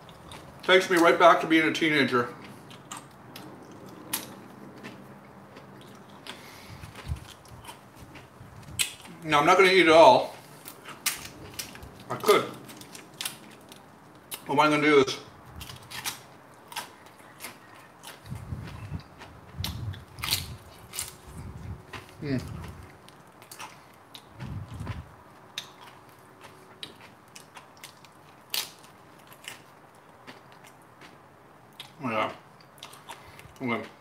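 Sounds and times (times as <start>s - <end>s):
person crunching chips: 2.3s - 14.5s, 15.5s - 31.2s.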